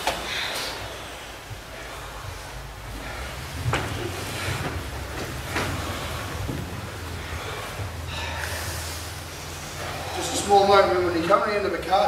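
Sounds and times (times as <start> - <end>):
steady low rumble: 0.0 - 12.0.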